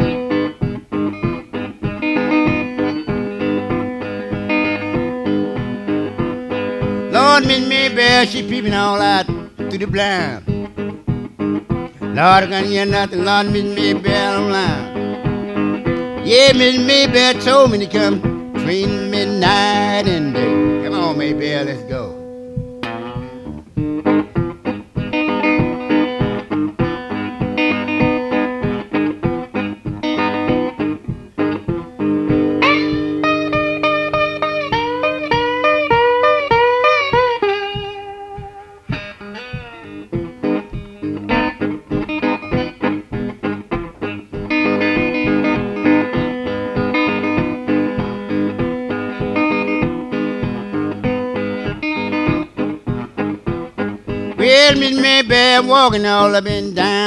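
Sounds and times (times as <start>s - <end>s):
electric blues guitar: 0.0s - 57.0s.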